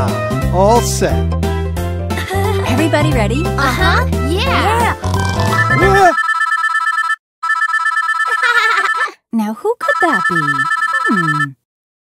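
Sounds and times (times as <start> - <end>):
electronic two-tone ringtone trill: 5.5 - 9.1, 9.8 - 11.6.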